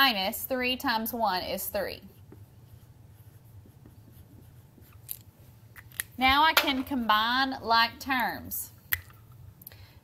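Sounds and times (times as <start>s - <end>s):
marker writing on whiteboard: 1.4s - 6.8s.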